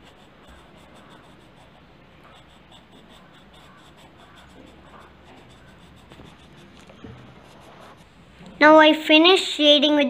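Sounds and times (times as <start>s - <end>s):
pencil scratching on paper: 0.0s - 8.3s.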